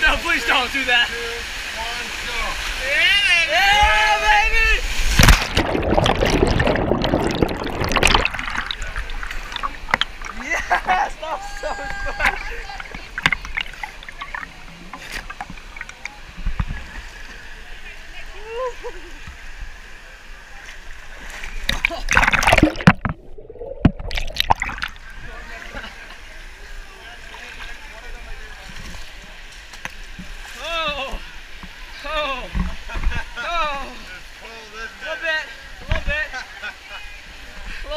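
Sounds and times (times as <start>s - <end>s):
water rushing on water slide: 0.0s - 37.9s
loud water splash: 4.7s - 10.5s, 21.2s - 25.2s.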